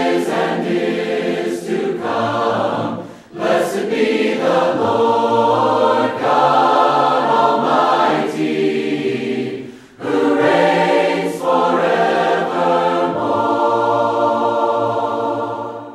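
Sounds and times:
choir singing held chords: 0.0s - 15.9s.

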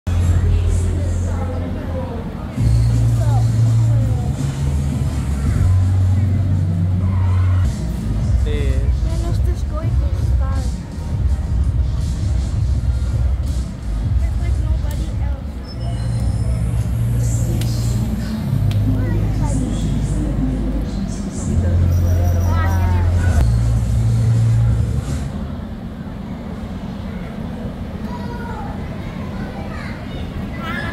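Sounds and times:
deep car engine drone: 0.1s - 25.7s
faint voices: 0.1s - 30.9s.

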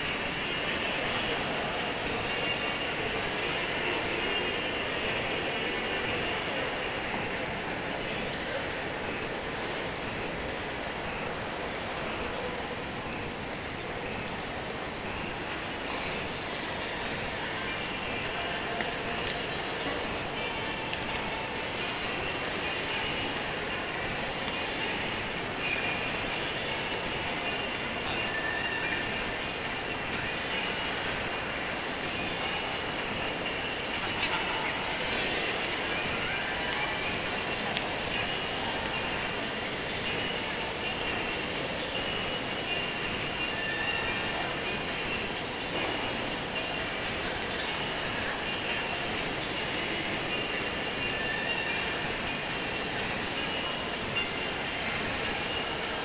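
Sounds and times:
background hubbub of voices: 0.0s - 56.0s.

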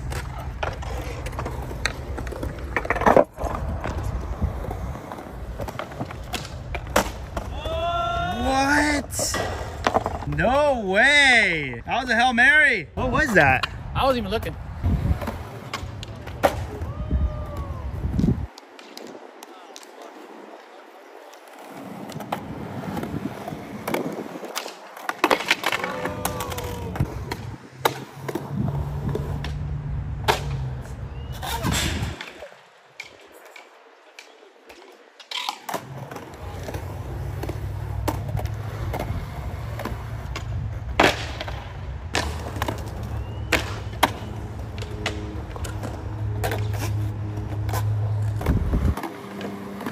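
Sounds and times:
skateboard clacks popping and landing: 0.0s - 7.6s, 9.3s - 10.4s, 21.4s - 30.7s, 31.4s - 49.9s
skateboard wheels rolling: 0.0s - 49.9s.

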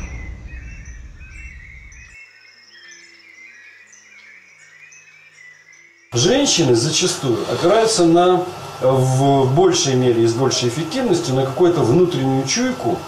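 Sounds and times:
low rumble: 0.0s - 2.2s
small birds chirping: 0.0s - 6.9s.

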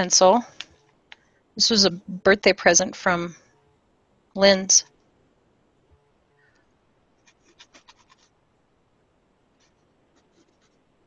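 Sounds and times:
pencil scratching on paper: 7.2s - 8.3s, 9.6s - 10.9s.

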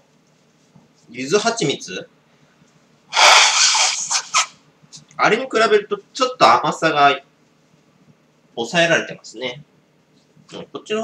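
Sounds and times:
person's forceful breathy exhale: 3.1s - 4.5s.

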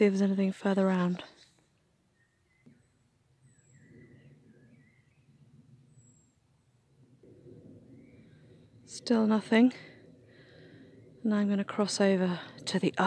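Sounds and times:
birds chirping: 2.0s - 13.0s.

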